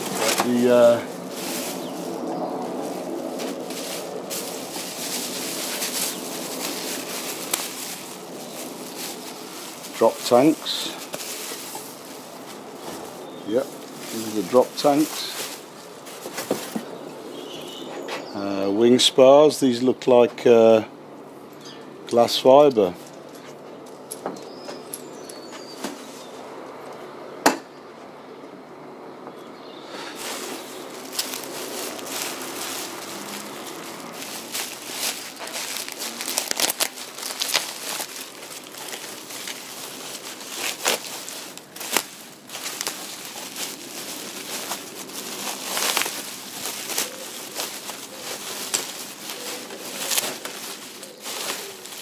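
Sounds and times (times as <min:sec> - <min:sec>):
sharp crackles: 0:00.0 - 0:16.8, 0:30.2 - 0:52.0
bubble wrap rustling and crinkling: 0:00.0 - 0:17.8, 0:29.9 - 0:52.0.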